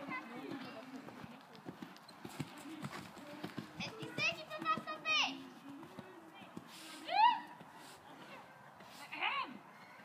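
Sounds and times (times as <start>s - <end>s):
hoofbeats on sand: 0.0s - 9.3s.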